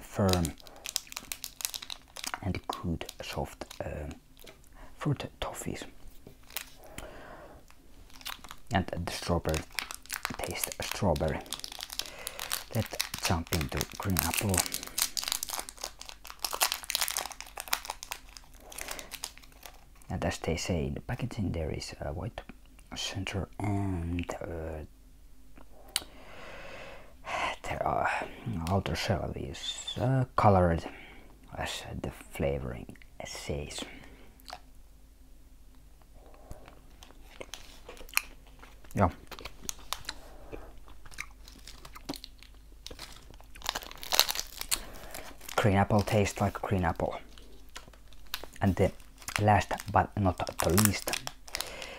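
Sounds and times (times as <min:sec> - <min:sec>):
foil wrapper crinkling: 0:00.0 - 0:04.6, 0:06.0 - 0:06.9, 0:08.0 - 0:20.1, 0:36.9 - 0:40.3, 0:40.9 - 0:51.9
close-up chewing: 0:36.2 - 0:45.6.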